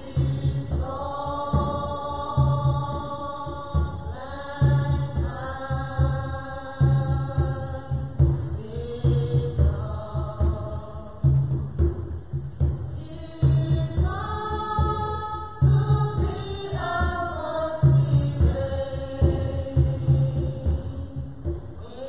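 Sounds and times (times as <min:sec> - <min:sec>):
low hand drum strokes: 0:00.0 - 0:22.0.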